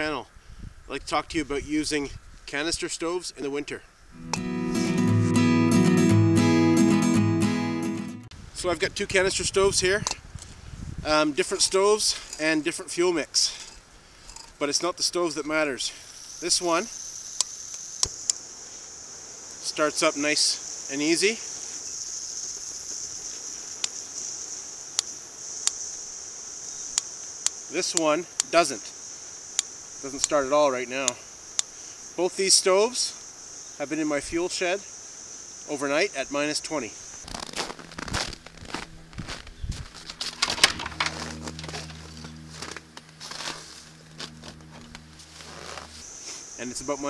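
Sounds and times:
footsteps crunching on snow: 37.1s - 46.6s
steady low hum: 37.2s - 47.0s.

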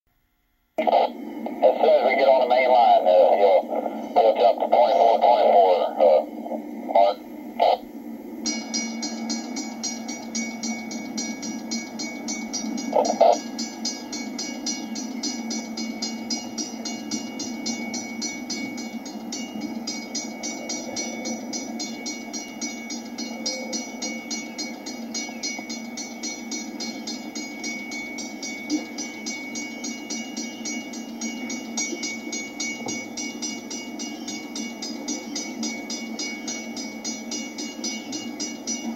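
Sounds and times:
two-way radio voice: 0.8s - 7.9s, 12.9s - 13.4s
locomotive bell ringing: 1.6s - 6.4s, 8.4s - 38.9s.

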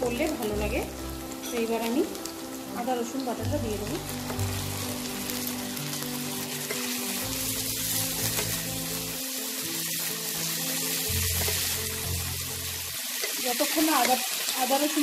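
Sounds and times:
onions sizzling in oil: 0.0s - 15.0s.

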